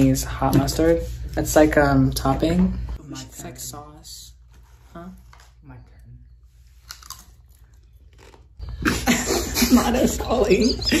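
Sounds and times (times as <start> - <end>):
tortilla chip crunching: 6.8 - 8.6.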